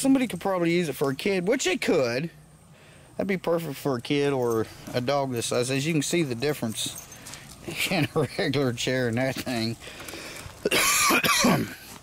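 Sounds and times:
man coughing: 0:10.6 - 0:11.9.

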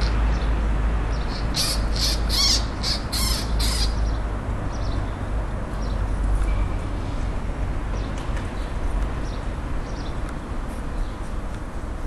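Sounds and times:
magpie chattering call: 0:01.3 - 0:04.0.

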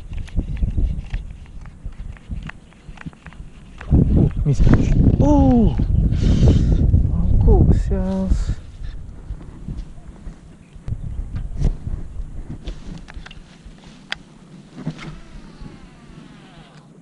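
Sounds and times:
wind rumbling on microphone: 0:00.0 - 0:17.0
fishing reel spool whirring: 0:14.9 - 0:16.9.

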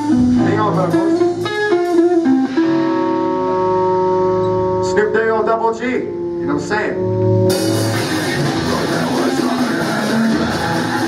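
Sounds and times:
electric guitar notes: 0:00.0 - 0:11.0.

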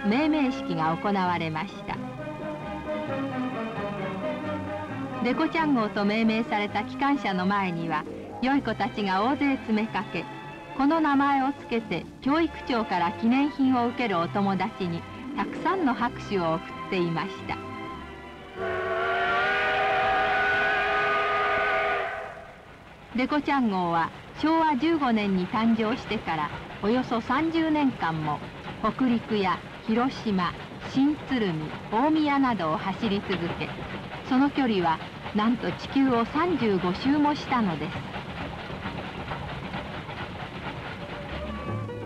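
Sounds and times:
steam locomotive chuffing: 0:00.0 - 0:42.0
steam locomotive whistle: 0:18.5 - 0:22.7
rail clatter: 0:22.7 - 0:42.0.

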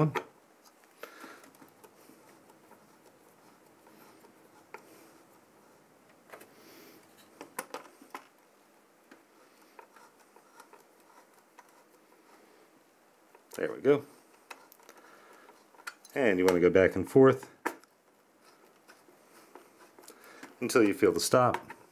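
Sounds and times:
screw clicks and scrapes: 0:00.1 - 0:05.5, 0:09.1 - 0:12.5, 0:14.2 - 0:16.6, 0:17.6 - 0:21.9.

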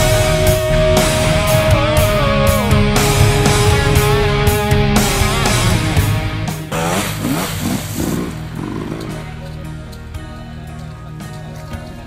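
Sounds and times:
rock music: 0:00.0 - 0:12.0
dirt bike engine revving: 0:00.5 - 0:09.8.

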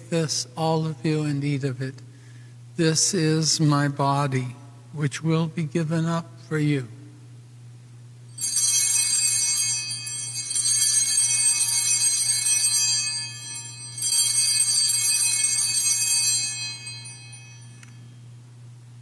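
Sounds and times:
altar bells ringing: 0:08.3 - 0:18.4.

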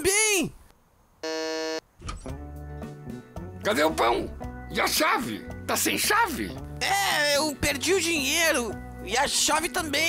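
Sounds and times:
electric doorbell buzzer: 0:01.2 - 0:01.8
background music: 0:02.0 - 0:10.0.

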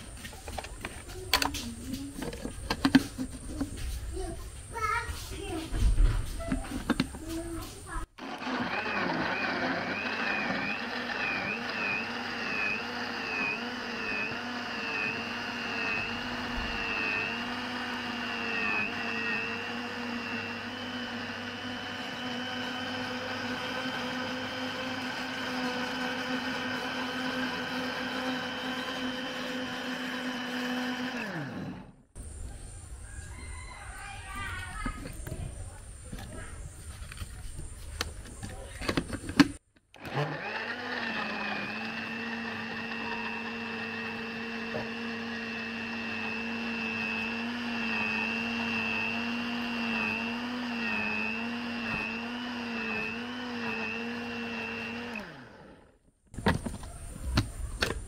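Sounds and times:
electric blender whining: 0:08.1 - 0:32.2, 0:39.9 - 0:56.0.

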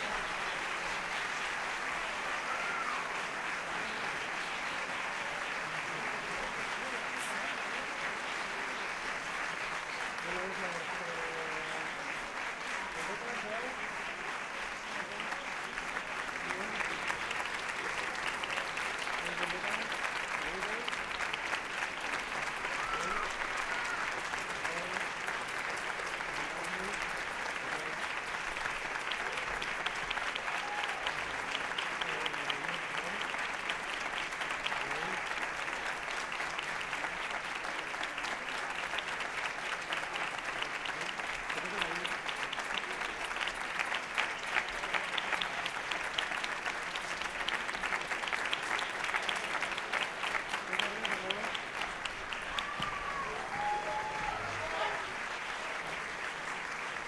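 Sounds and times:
audience clapping: 0:00.0 - 0:57.0.

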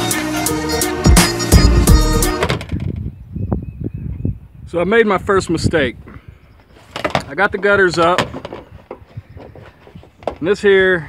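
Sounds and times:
backing music: 0:00.0 - 0:02.7.

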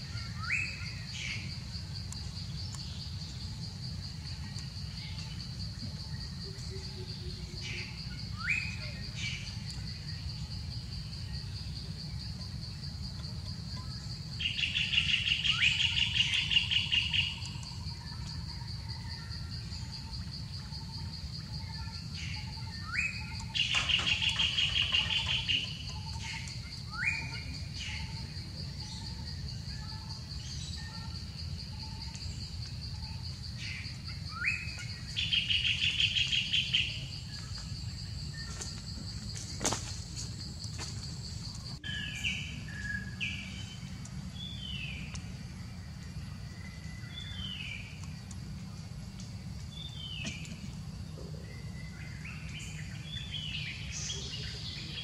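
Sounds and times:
high insect drone: 0:00.0 - 0:55.0.

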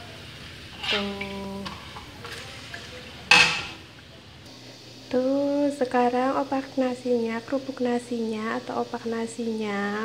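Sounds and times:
frying in hot oil hiss: 0:00.0 - 0:10.0
metal spatula clanking on wok: 0:03.3 - 0:03.8.

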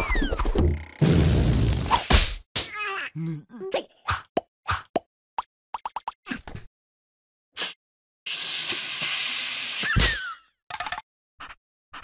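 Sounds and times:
cartoon gibberish voice: 0:02.7 - 0:04.1.

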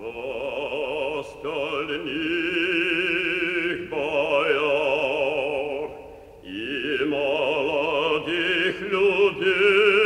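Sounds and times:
operatic voice singing: 0:00.0 - 0:10.0.

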